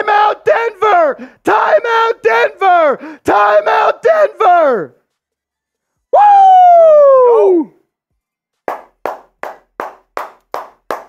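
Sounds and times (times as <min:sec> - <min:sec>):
person clapping hands: 0:08.6 - 0:11.0.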